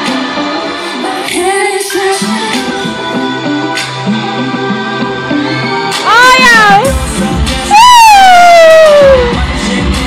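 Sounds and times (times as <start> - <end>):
pop concert music: 0.0 - 10.0.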